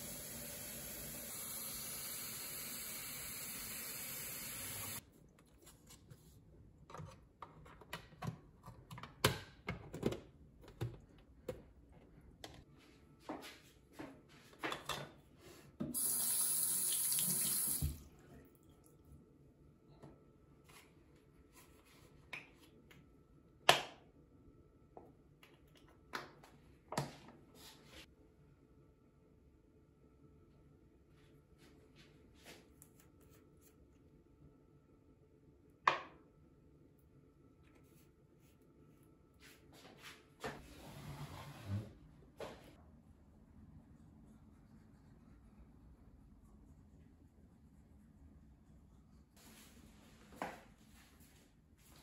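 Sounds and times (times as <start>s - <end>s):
sink tap running: 0.0s - 5.0s, 16.0s - 18.0s.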